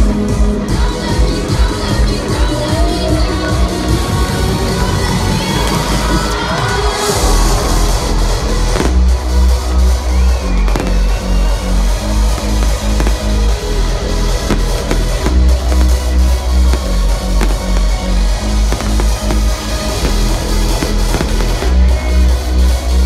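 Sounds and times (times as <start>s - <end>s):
crowd cheering: 3.1s - 23.0s
fireworks banging: 7.4s - 9.9s, 10.5s - 23.0s
sharp cracks: 12.3s - 13.7s, 14.3s - 21.9s.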